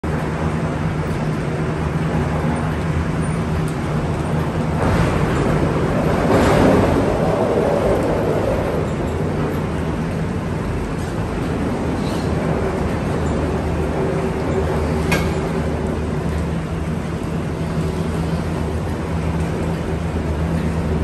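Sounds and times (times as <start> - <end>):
cabin rolling rumble on rail: 0.0 - 21.0
cable car machinery humming: 0.0 - 21.0.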